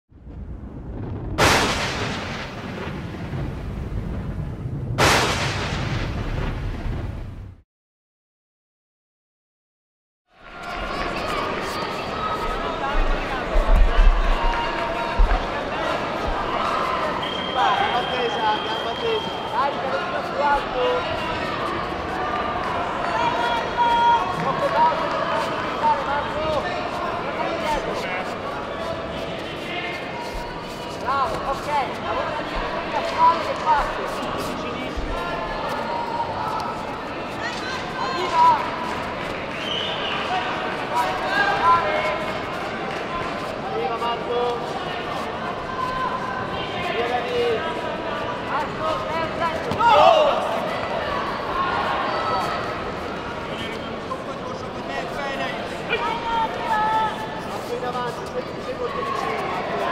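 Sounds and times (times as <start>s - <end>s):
low rumble: 0.2s - 7.6s
cinematic boom hits: 0.3s - 7.6s
people shouting: 10.5s - 38.9s, 45.1s - 52.8s.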